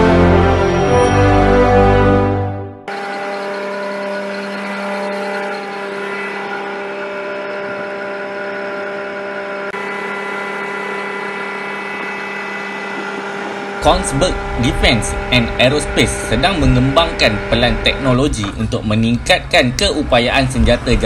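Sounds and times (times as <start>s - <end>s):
vehicle engine idling: 13.6s - 21.0s.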